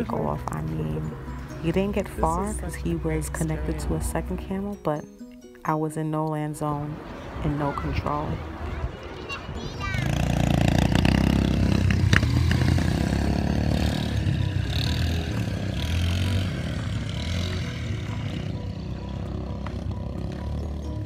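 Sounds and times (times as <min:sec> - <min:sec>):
quad bike engine running: 0:09.8 - 0:21.0.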